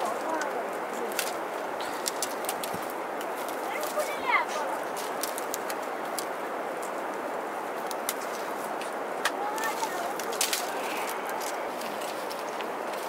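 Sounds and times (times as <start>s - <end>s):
plant strips clicking and rustling: 0.0s - 13.0s
steady hiss: 0.0s - 13.0s.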